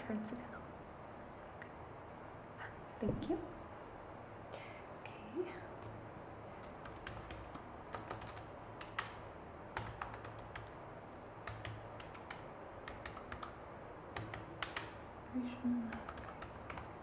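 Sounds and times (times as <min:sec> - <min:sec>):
typing on laptop keyboard: 0:06.6 - 0:15.0, 0:15.9 - 0:17.0.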